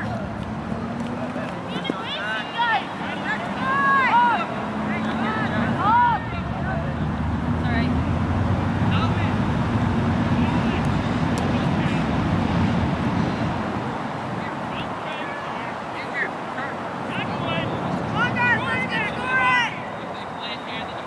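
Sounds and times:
loud drawn-out shouts: 1.6s - 7.2s, 14.2s - 20.0s.

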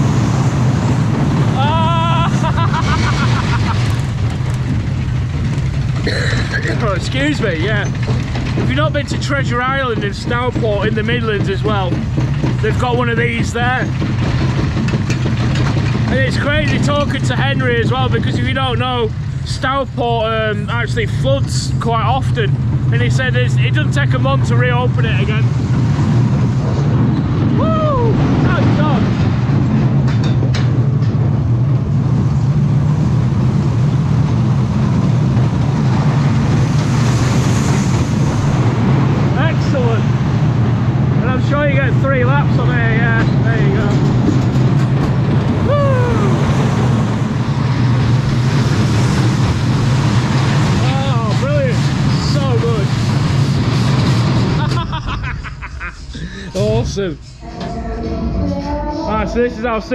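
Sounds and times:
roller coaster rumbling on track: 0.0s - 59.9s
high wheel squeals: 56.1s - 59.9s.

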